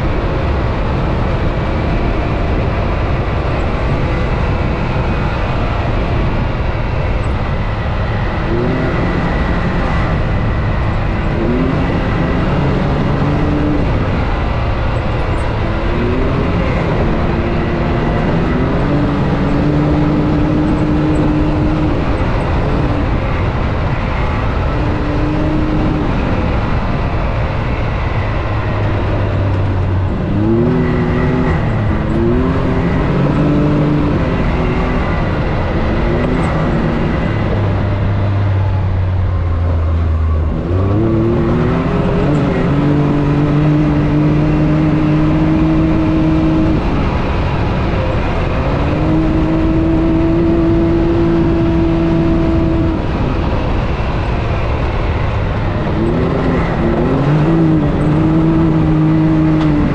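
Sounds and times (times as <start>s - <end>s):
off-road vehicle engine revving: 0.0s - 59.9s.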